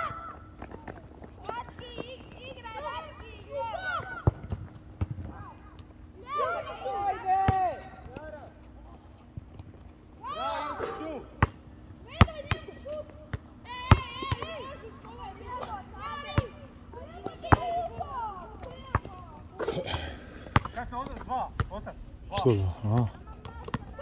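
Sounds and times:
basketball bouncing on court: 13.3s - 15.2s, 17.2s - 19.2s, 20.4s - 21.8s, 23.2s - 24.0s
men talking: 19.6s - 23.2s.

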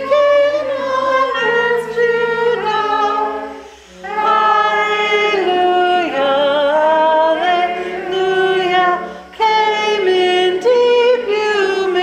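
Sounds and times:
voices singing a hymn: 0.0s - 12.0s.

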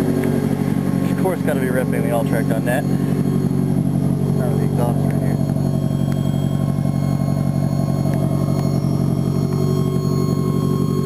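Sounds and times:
car exhaust idling: 0.0s - 11.0s.

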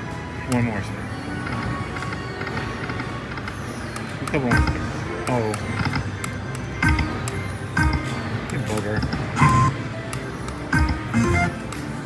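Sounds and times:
slot machine spin chimes: 9.2s - 9.9s.

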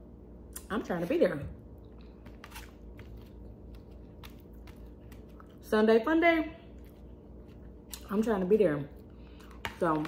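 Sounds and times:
low room hum: 0.0s - 10.0s
quiet chewing: 3.4s - 5.6s.

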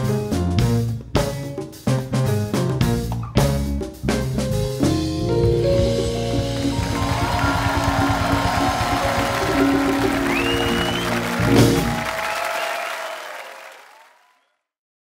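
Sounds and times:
afrobeat band playing: 0.0s - 12.9s
drum roll: 0.0s - 13.1s
audience applauding: 6.3s - 14.6s.

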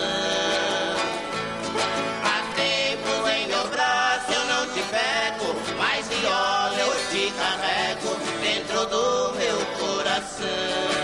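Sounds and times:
man singing with vibrato: 0.0s - 11.0s
stringed guitar accompaniment: 0.0s - 11.0s.

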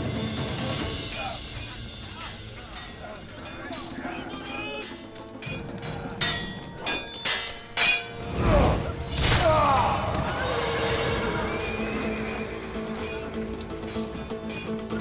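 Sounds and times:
dramatic orchestral film score: 0.0s - 15.0s.

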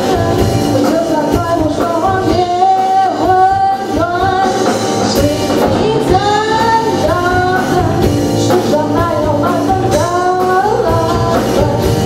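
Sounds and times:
live band with drums: 0.0s - 12.0s
woman singing pop song: 0.0s - 12.0s.

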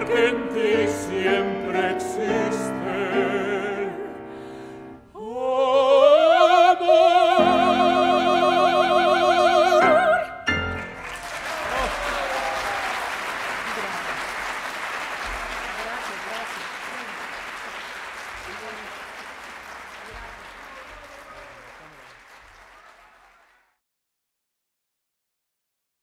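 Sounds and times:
audience applause: 10.8s - 23.8s.

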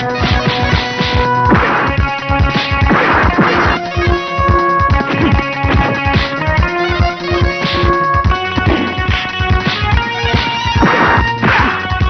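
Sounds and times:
fight scene film music: 0.0s - 12.0s
hit sound effects: 0.2s - 3.9s, 10.4s - 11.9s
low drum-like thuds: 0.2s - 9.7s.

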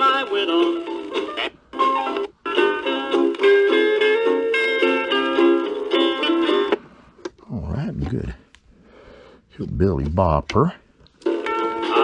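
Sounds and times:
record playing on turntable: 0.0s - 3.4s, 9.8s - 12.0s.

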